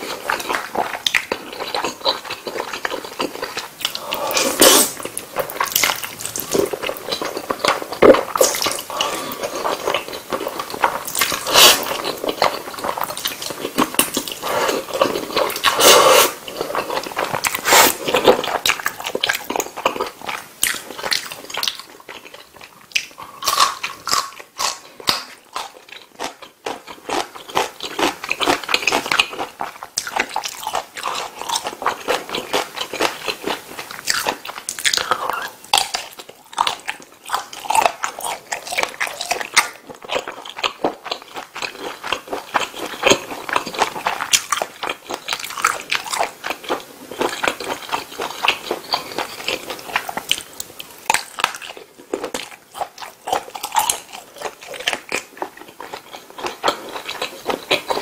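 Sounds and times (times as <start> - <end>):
person chewing food: 0.0 - 58.0.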